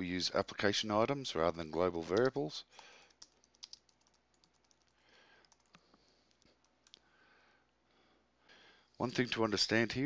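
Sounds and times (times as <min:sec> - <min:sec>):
typing on a computer keyboard: 0:02.1 - 0:02.4, 0:03.0 - 0:07.0.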